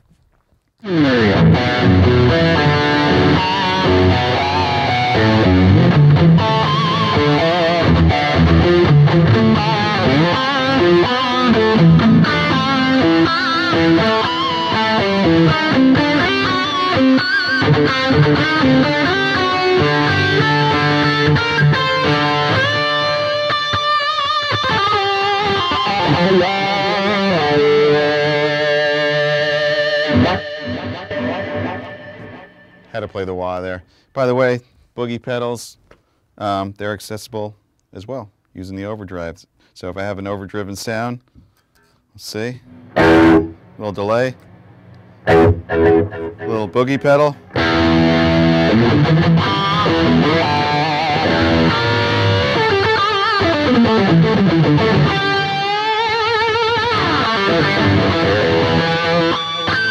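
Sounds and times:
distorted electric guitar lead: 0:00.8 - 0:32.9, 0:42.6 - 0:59.9.

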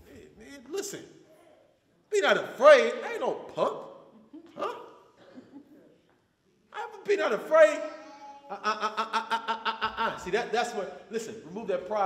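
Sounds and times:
man saying huh: 0:04.6 - 0:04.9.

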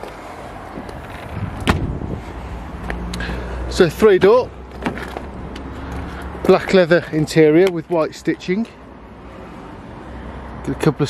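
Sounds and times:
steady rushing noise: 0:00.0 - 0:03.9.

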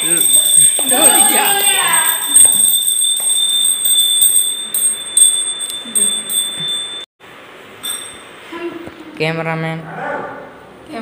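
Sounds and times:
hand bell ringing: 0:00.0 - 0:07.1, 0:07.8 - 0:08.3.

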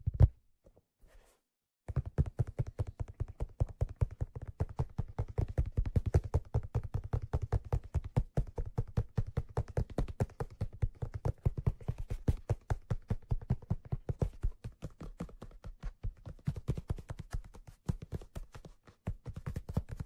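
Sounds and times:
fingertips tapping on leather hat: 0:01.9 - 0:20.0.

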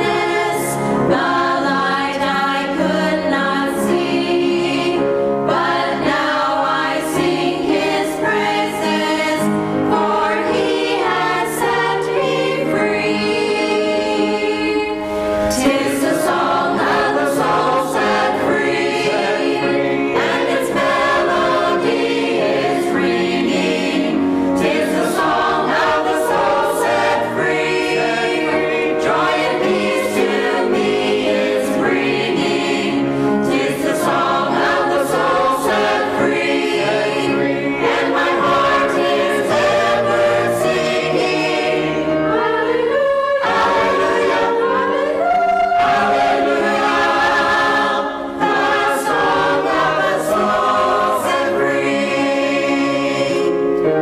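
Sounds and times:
mixed choir singing in parts: 0:00.0 - 0:54.0.

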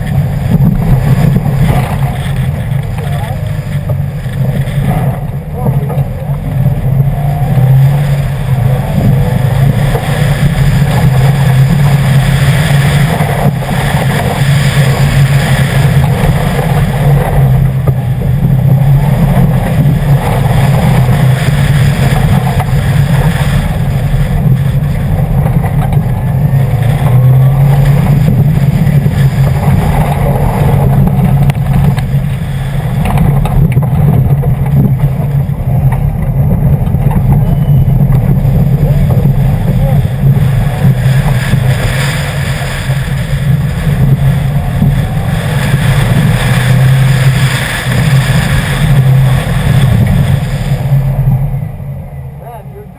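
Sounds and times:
tyres on loose gravel: 0:00.0 - 0:51.9
car engine running loudly: 0:00.0 - 0:52.9.

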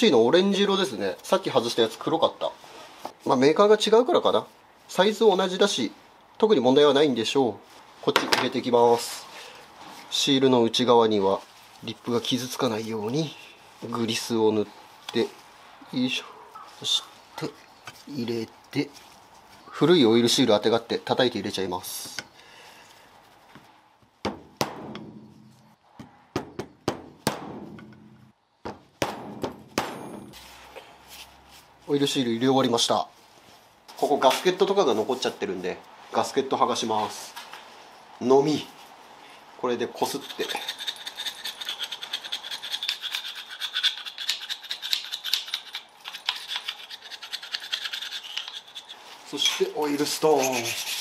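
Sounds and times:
mallet knocks on metal: 0:26.4 - 0:30.3
chisel scraping metal: 0:40.0 - 0:51.0.

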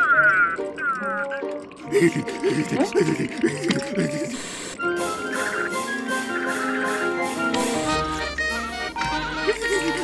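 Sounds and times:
light background music: 0:00.0 - 0:10.0
trembling vocal sounds: 0:00.9 - 0:04.4
music with held notes: 0:04.8 - 0:10.0.

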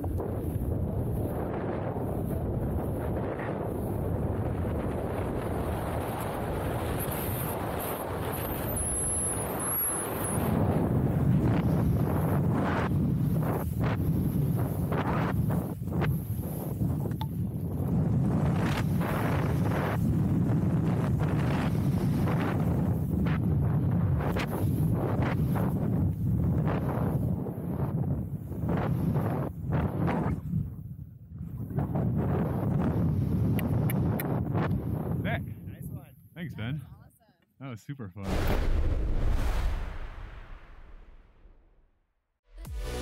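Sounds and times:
wind on microphone: 0:00.0 - 0:36.8.

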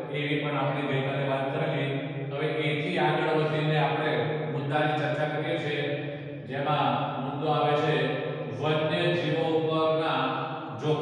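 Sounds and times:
man speaking in monotone: 0:00.0 - 0:11.0.

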